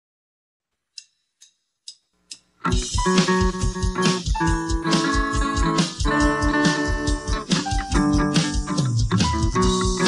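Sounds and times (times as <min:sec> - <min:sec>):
count-in clicks: 0:01.0 - 0:10.0
band music: 0:02.7 - 0:10.0.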